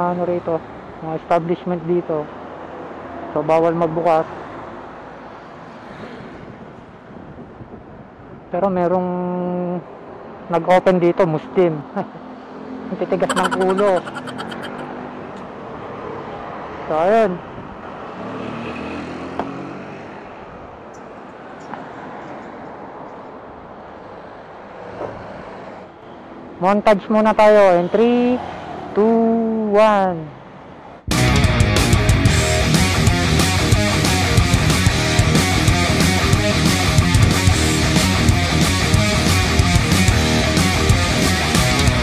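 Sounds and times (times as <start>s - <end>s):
roadside traffic noise: 0.0s - 8.5s, 9.5s - 31.1s.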